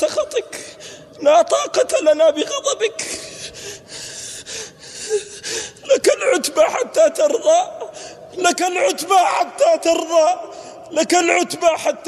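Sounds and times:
man speaking: 0.0 - 3.2, 5.8 - 12.0
man sobbing: 2.4 - 8.2.

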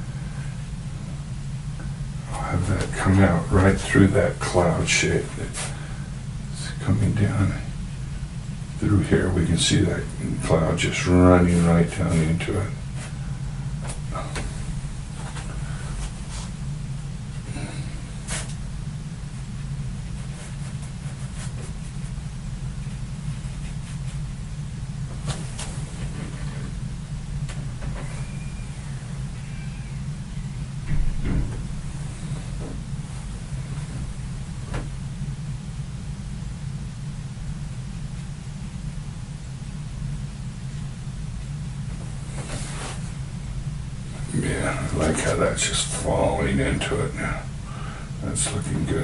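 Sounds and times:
low background hum: 0.0 - 49.0
loud knock: 30.9 - 31.7.

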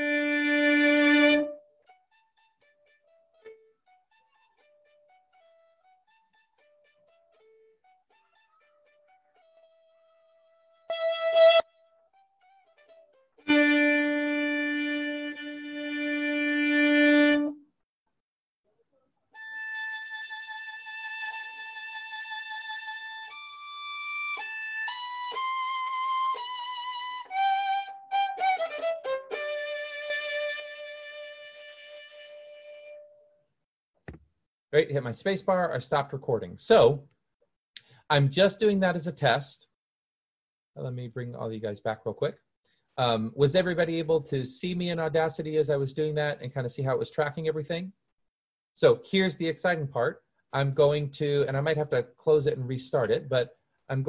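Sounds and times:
solo violin playing: 0.0 - 17.7, 19.3 - 33.2.

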